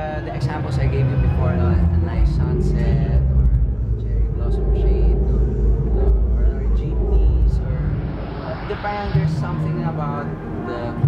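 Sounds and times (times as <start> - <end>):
loud deep rumble: 0.0 - 11.0
man talking: 0.0 - 11.0.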